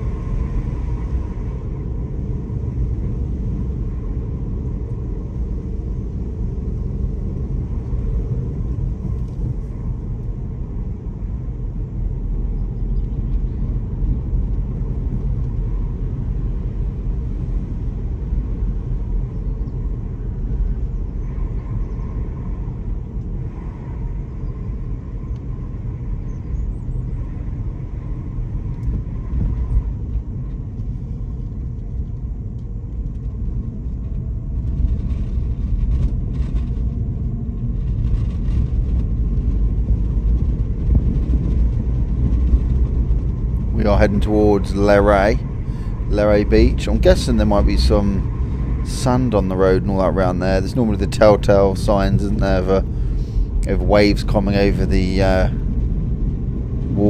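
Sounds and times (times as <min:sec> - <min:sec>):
car driving rumble inside cabin: 0:00.0 - 0:57.0.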